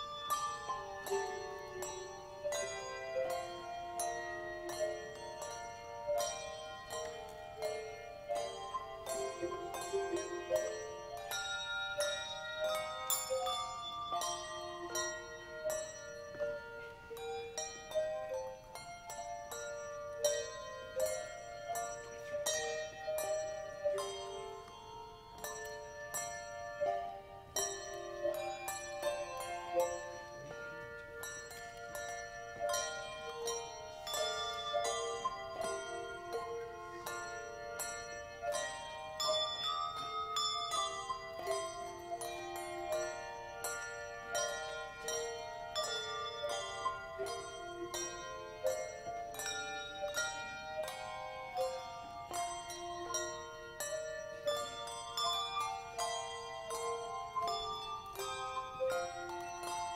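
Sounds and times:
handbells ringing: 0.0s - 59.9s.

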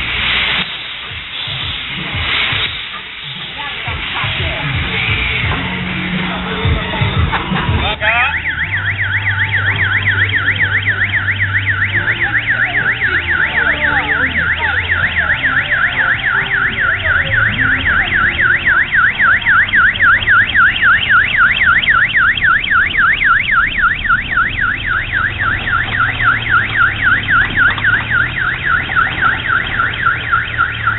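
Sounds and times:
electronic siren warbling: 8.0s - 30.9s.

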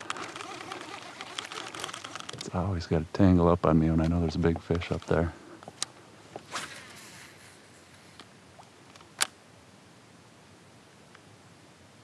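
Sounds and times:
fishing reel small clicks: 0.0s - 2.5s.

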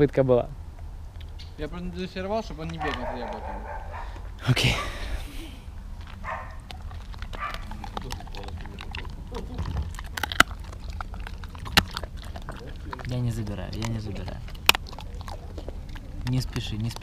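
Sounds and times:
dog chewing hard treat: 2.6s - 4.2s, 5.7s - 17.0s.

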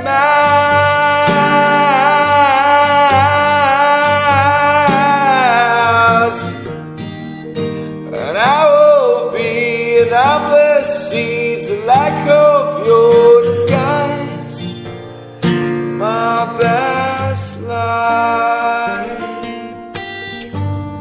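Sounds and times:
person singing: 0.0s - 6.8s, 8.1s - 14.8s, 15.8s - 21.0s
guitar accompaniment: 0.0s - 21.0s.

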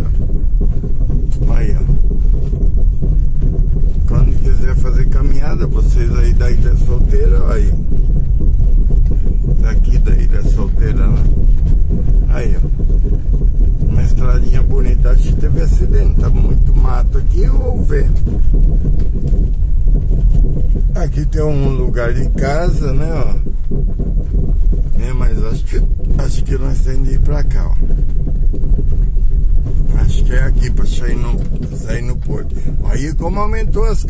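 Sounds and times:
car engine and tyres on dirt: 0.0s - 34.0s.

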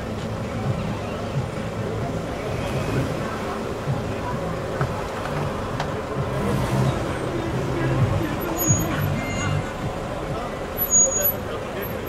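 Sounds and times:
vehicle engine running: 0.0s - 12.0s
men talking: 5.5s - 12.0s.

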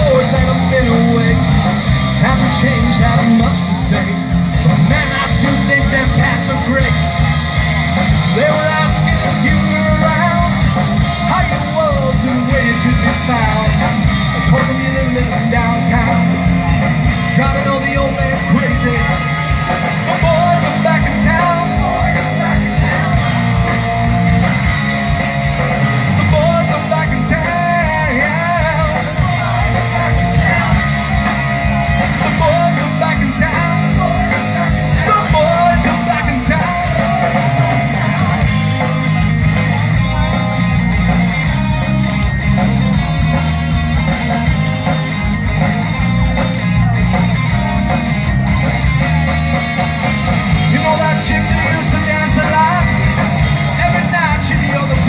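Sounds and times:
man singing lead vocal: 0.0s - 42.0s, 50.2s - 55.0s
bass guitar: 0.0s - 55.0s
drums: 0.0s - 55.0s
electric guitars: 0.0s - 55.0s
live rock band playing: 0.0s - 55.0s.

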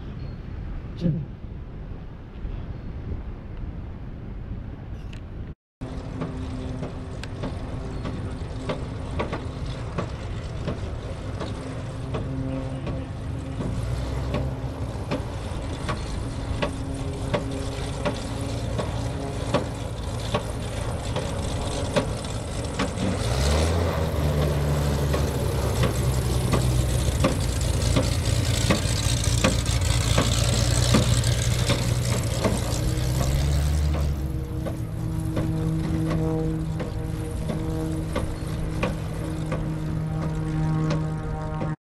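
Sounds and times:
propeller plane engine running: 5.3s - 41.8s.

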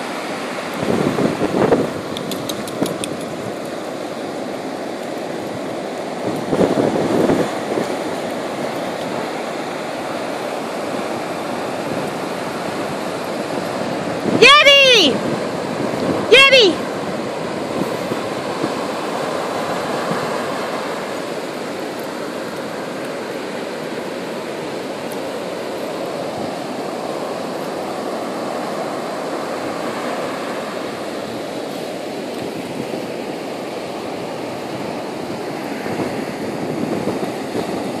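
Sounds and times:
ocean surf breaking on sand: 0.0s - 38.0s.

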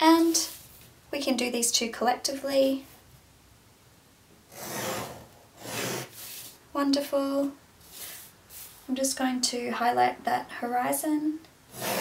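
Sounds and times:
pencil scraping along ruler: 4.5s - 6.6s, 11.7s - 12.0s.

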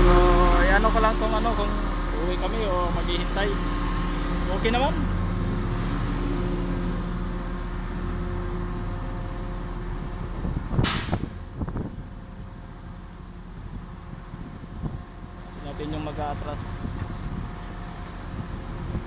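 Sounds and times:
diesel truck engines humming: 0.0s - 19.0s
air brake hiss: 10.8s - 11.4s.

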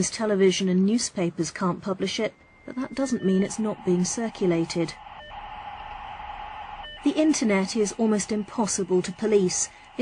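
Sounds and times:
steady electronic hiss: 3.5s - 10.0s.

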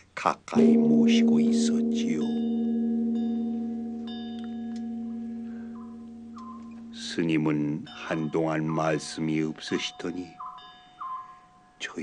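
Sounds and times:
metallic chime struck: 0.6s - 9.6s
bell-like ringing tones: 0.6s - 11.4s.

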